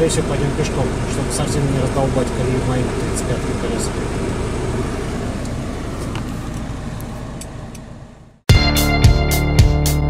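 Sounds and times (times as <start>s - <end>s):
engine and road rumble in cab: 0.0s - 8.5s.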